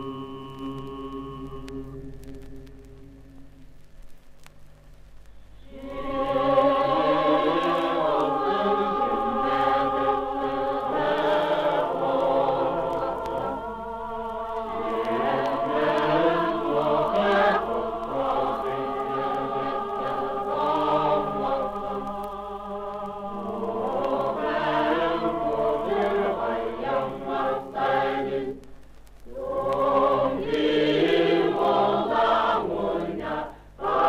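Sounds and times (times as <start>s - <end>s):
mixed choir singing chords: 5.6s - 28.6s, 29.3s - 34.0s.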